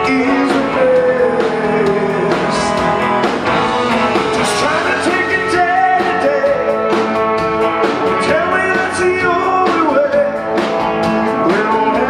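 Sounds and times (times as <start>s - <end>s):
lead vocal singing: 0.0s - 7.1s, 8.1s - 10.5s, 11.1s - 12.0s
rock band playing live: 0.0s - 12.0s.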